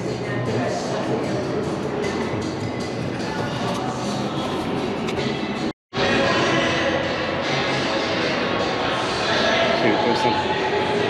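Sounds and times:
background music: 0.0s - 11.0s
loud indoor din: 0.0s - 11.0s.

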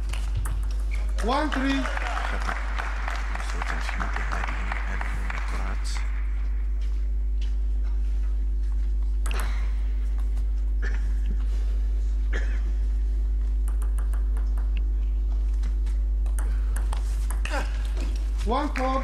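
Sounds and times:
low electrical hum: 0.0s - 19.0s
table tennis ball clicks: 13.6s - 14.9s, 16.2s - 18.0s.

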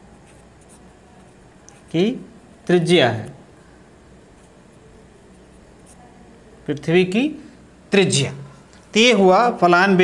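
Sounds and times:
pen scratching on paper: 0.2s - 1.9s.

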